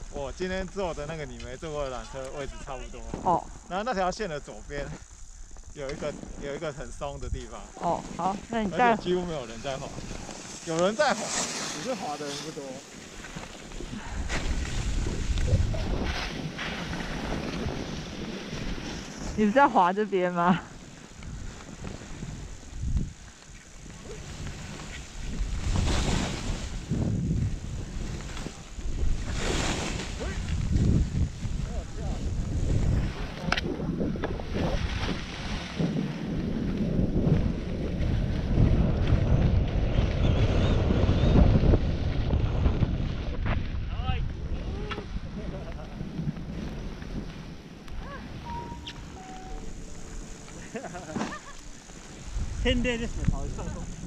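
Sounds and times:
wind rushing over microphone: 0.0s - 54.0s
skis scraping on snow: 5.8s - 19.8s, 20.7s - 54.0s.

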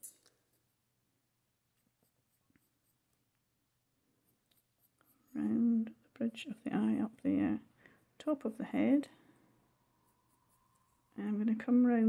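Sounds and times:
pencil scratching on paper: 1.8s - 3.1s, 4.2s - 5.6s, 10.0s - 11.1s.

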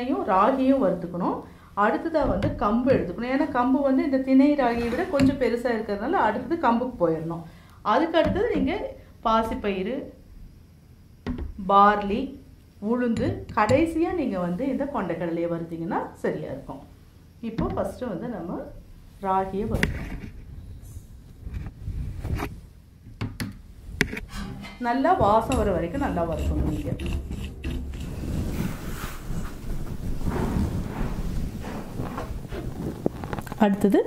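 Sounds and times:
woman speaking: 0.0s - 10.2s, 11.6s - 19.9s, 24.8s - 27.2s, 33.5s - 34.0s
metal spoon scraping a pan: 4.7s - 5.4s, 24.1s - 29.4s.

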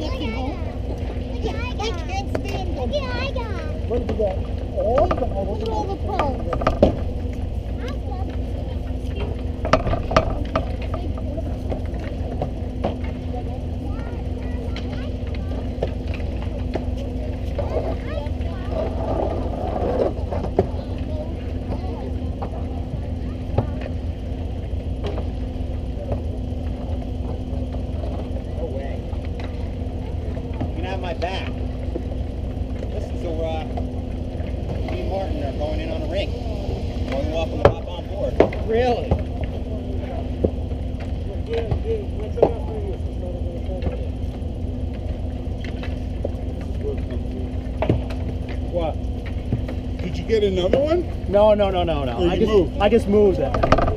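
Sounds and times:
low hum and rumble: 0.0s - 53.9s.

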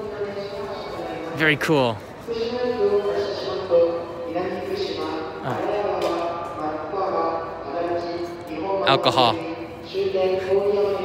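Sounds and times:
busy train station concourse: 0.0s - 11.0s.

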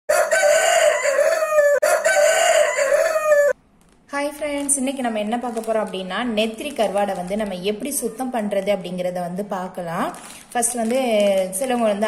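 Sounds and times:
rooster crowing: 0.1s - 3.6s.

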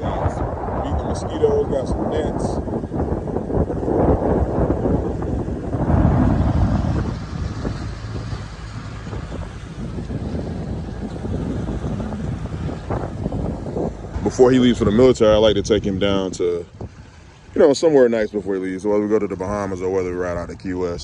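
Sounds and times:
motorboat rumbling through water: 0.0s - 21.0s
wind buffeting microphone: 0.0s - 21.0s.

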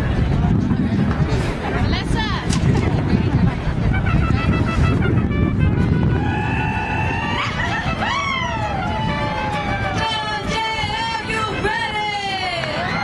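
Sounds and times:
steady low rumble: 0.0s - 11.8s
mariachi band playing: 3.5s - 13.0s.

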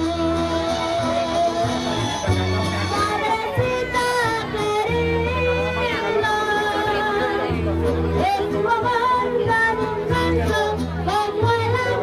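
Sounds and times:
musical accompaniment with bass: 0.0s - 12.0s
boy singing into microphone: 8.2s - 12.0s.

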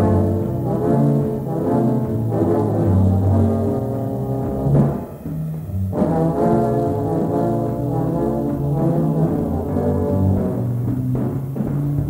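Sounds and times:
brass section holding chord: 0.0s - 5.2s, 5.9s - 11.4s.

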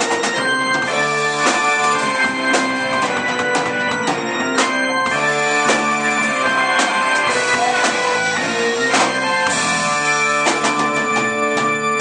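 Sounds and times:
keyboard chords: 0.0s - 12.0s
live band playing: 0.0s - 12.0s.

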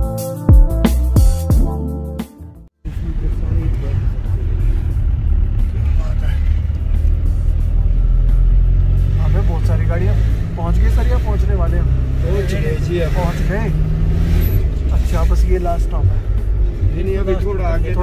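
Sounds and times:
vehicle engine and road rumble: 2.8s - 18.0s.

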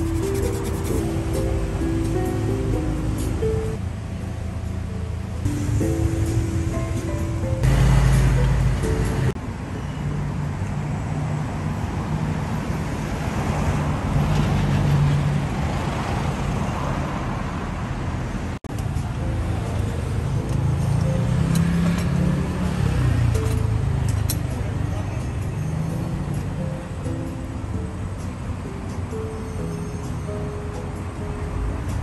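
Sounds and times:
soft background music: 0.0s - 9.4s, 18.7s - 32.0s
cars passing: 0.0s - 32.0s.

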